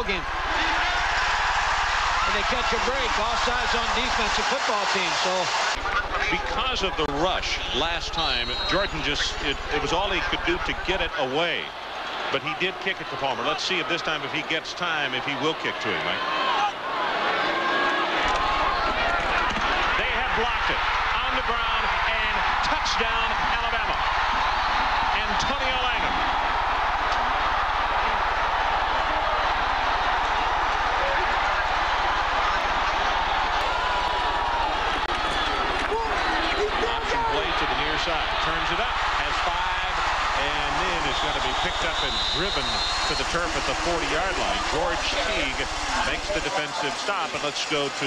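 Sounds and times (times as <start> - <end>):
stadium crowd cheering: 0.0 - 48.0.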